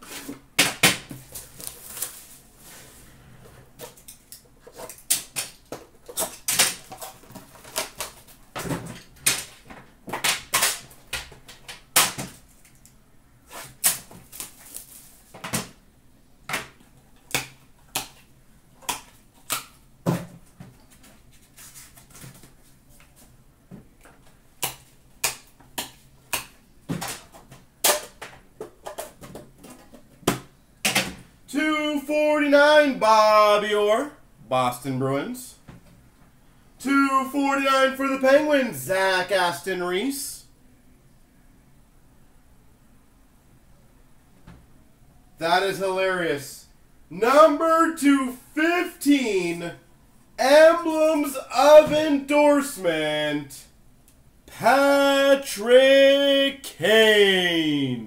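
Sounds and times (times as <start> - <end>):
cards sliding and rustling: 0.0 - 0.5, 1.3 - 3.2, 13.5 - 15.3, 20.9 - 23.3.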